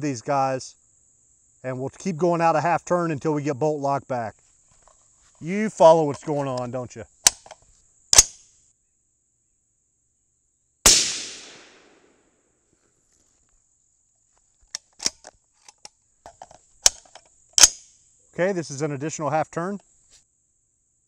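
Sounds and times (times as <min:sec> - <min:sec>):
metallic rifle handling clicks: 0:06.1 - 0:07.6, 0:14.7 - 0:17.8
rifle shot: 0:10.9 - 0:12.2.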